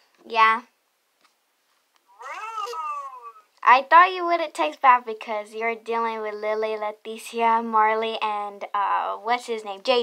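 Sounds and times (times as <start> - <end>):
cat meowing: 2.1 - 3.5.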